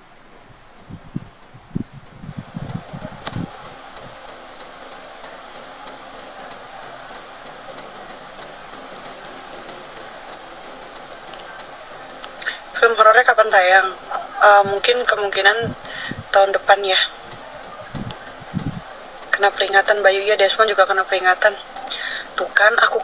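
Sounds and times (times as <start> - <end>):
car road noise hiss: 0.0 - 23.0
low thumps: 0.5 - 19.7.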